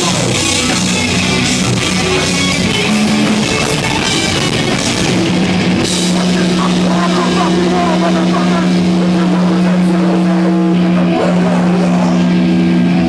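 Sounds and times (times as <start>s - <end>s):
low amplified drone note: 0.0s - 13.0s
voices: 6.0s - 13.0s.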